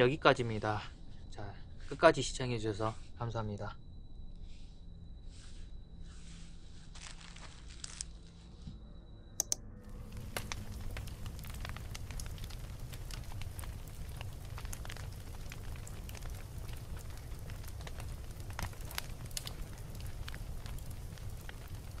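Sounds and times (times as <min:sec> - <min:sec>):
low fire rumble: 0:09.8 - 0:22.0
fire crackling and popping: 0:09.9 - 0:22.0.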